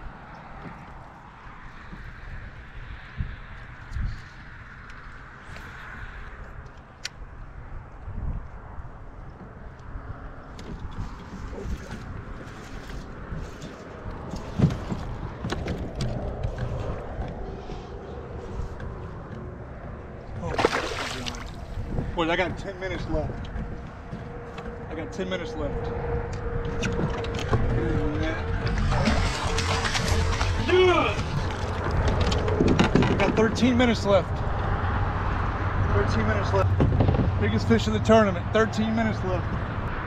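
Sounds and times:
wind rumbling on microphone: 0.0s - 40.0s
water sloshing against hull: 9.1s - 24.9s.

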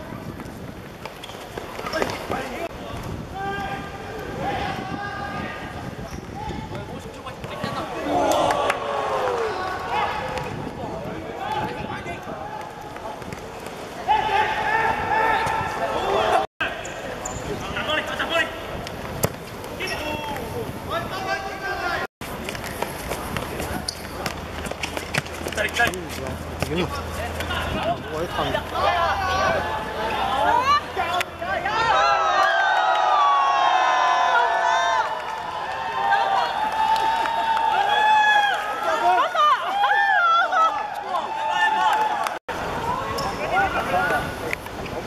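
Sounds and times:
men cheering: 7.8s - 10.5s, 27.5s - 43.0s
voices shouting: 27.4s - 44.0s.

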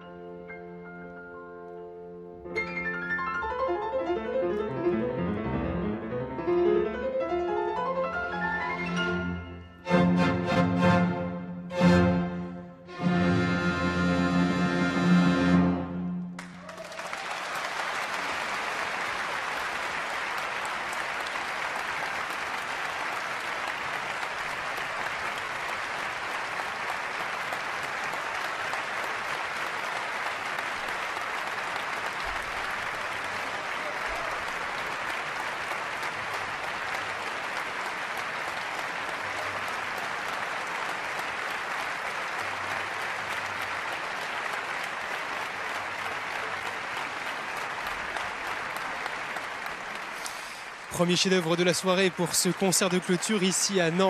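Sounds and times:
audience applauding: 8.1s - 54.0s.

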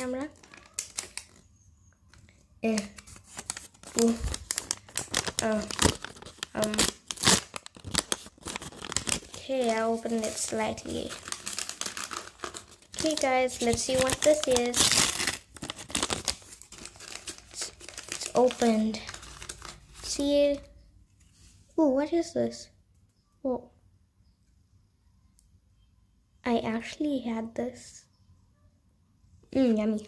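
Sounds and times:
plastic wrapper crinkling: 0.0s - 20.7s.

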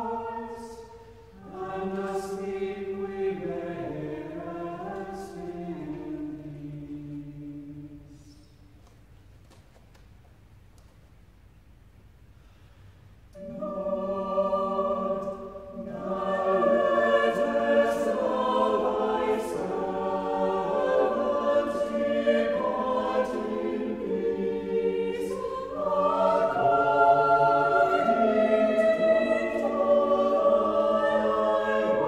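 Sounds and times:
church choir singing: 0.0s - 8.6s, 13.3s - 32.0s.

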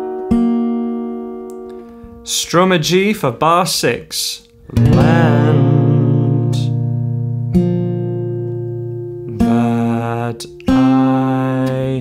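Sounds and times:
fingerpicked acoustic guitar: 0.0s - 3.1s, 4.5s - 12.0s.

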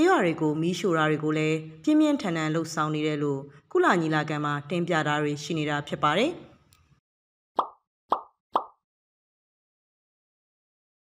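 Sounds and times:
cartoon pop sound effects: 7.6s - 8.8s.

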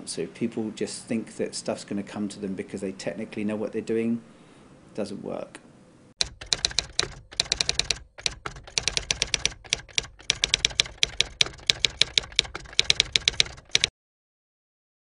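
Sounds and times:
rapid sharp clicks: 6.2s - 13.9s.

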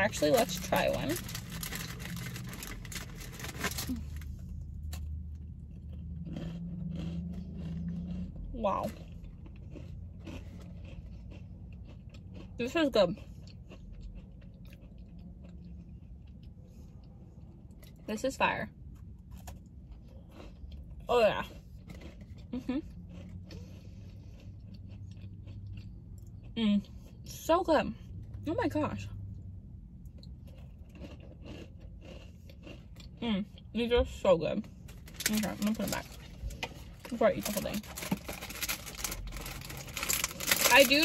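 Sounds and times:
cookie crunching while chewing: 0.0s - 18.0s, 18.9s - 26.6s, 30.0s - 33.2s, 34.7s - 41.0s.

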